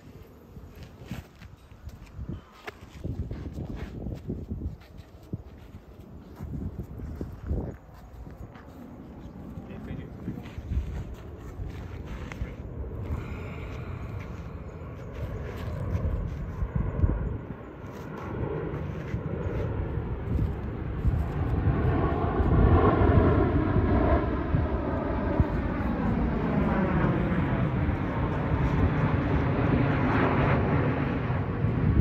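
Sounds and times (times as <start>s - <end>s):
aircraft passing overhead: 0.0s - 32.0s.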